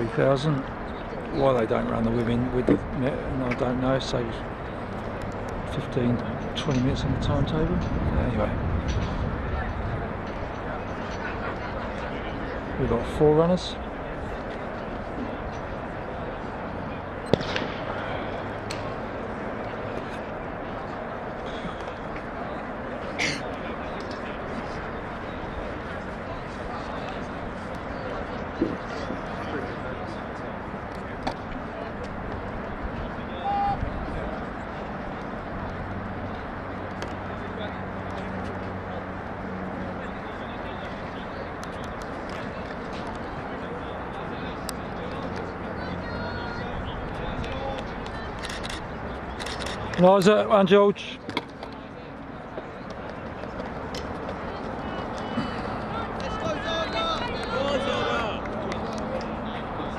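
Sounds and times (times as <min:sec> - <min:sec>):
steady noise haze: 0:00.0 - 0:59.9.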